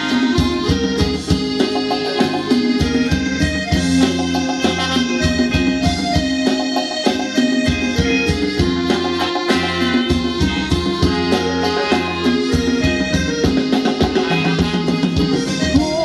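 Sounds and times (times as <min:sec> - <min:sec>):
keyboard melody over steady beat: 0:00.0 - 0:16.0.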